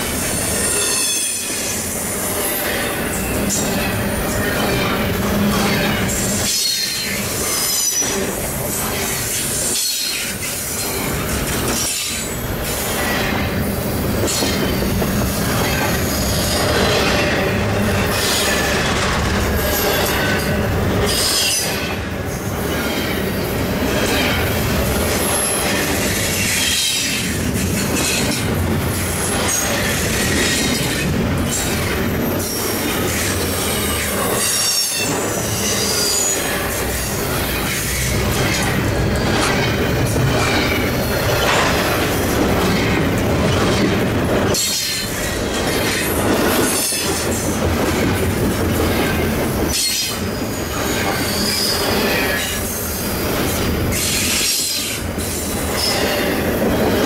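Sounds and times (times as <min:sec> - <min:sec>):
freight train rumbling past: 0:00.0 - 0:57.0.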